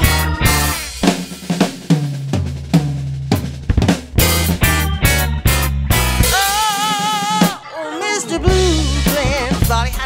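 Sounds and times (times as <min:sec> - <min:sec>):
rock drum kit playing: 0:00.0 - 0:07.8, 0:08.4 - 0:10.0.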